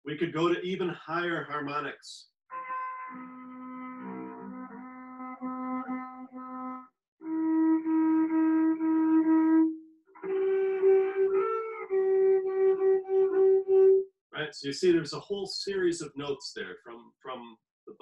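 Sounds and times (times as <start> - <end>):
cello bowed harmonics: 2.5 - 6.9, 10.2 - 13.9.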